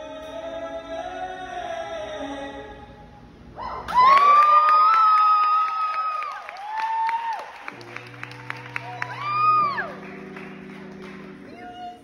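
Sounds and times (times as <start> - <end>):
high-pitched whoop: 3.6 - 7.7, 8.7 - 10.0
scattered clapping: 3.9 - 11.7.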